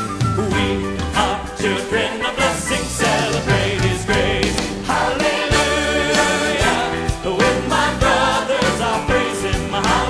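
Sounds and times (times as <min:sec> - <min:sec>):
band accompaniment: 0:00.0 - 0:10.0
choir singing gospel song: 0:00.2 - 0:10.0
drum hit: 0:03.0 - 0:07.0.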